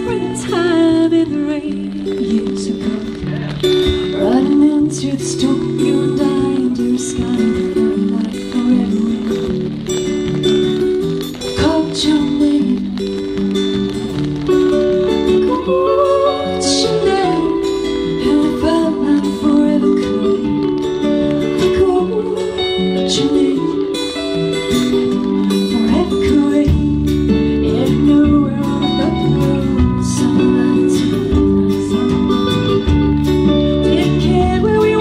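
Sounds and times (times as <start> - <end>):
drums: 0.0 - 35.0
electric guitars: 0.0 - 35.0
live band playing: 0.0 - 35.0
strummed acoustic guitar: 0.0 - 35.0.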